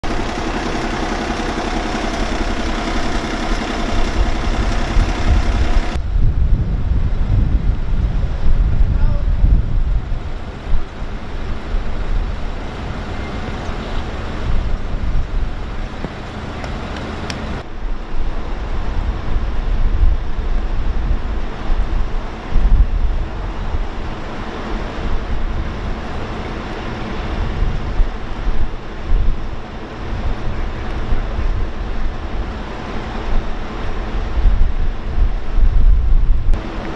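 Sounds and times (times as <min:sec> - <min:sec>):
engine hum: 0:00.0 - 0:36.9
wind rumbling on microphone: 0:00.0 - 0:36.9.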